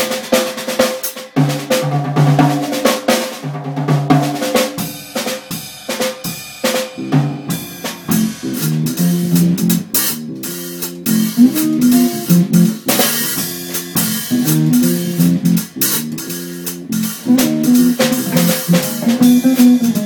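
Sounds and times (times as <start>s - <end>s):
drum kit: 0.0s - 20.0s
bass: 6.9s - 20.0s
electric guitar: 7.0s - 20.0s.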